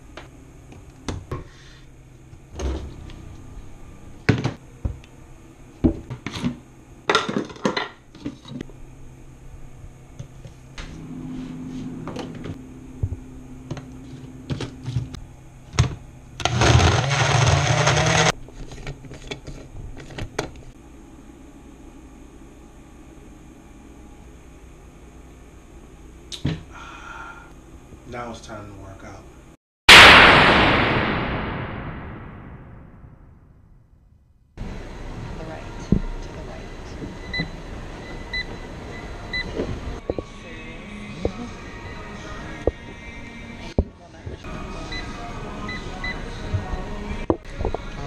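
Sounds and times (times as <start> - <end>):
blender running: 16.4 - 18.4
boom sound effect tail: 29.9 - 33.8.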